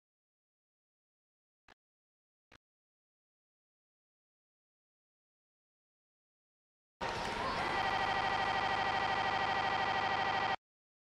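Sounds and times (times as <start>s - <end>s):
pulsing electronic buzzer tone: 7.1s - 10.6s.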